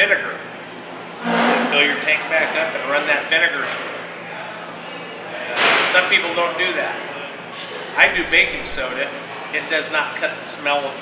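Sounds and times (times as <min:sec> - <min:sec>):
sharp rush of noise: 0:01.1 - 0:02.3, 0:08.0 - 0:08.9
person speaking: 0:08.0 - 0:08.9.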